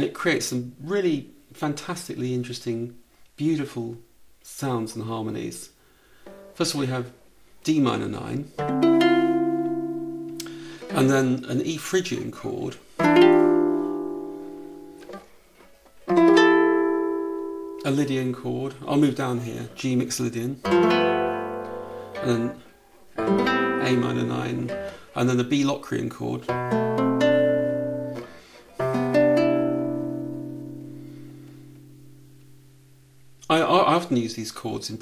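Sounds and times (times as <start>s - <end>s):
finger noise on guitar strings: 8.5s - 11.1s
classical guitar chord: 8.6s - 11.1s, 13.0s - 15.3s, 16.0s - 18.8s, 20.6s - 25.1s, 26.4s - 33.2s.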